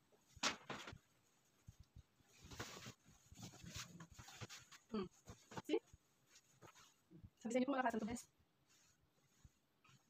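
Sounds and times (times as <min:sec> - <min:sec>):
clothing fabric rustling: 0:00.0 - 0:10.0.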